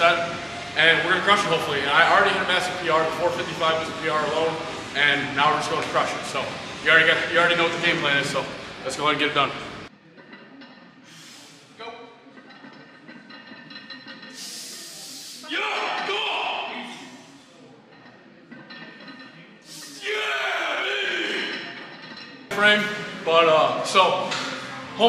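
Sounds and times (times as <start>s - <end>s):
faint gym music: 0.0s - 25.0s.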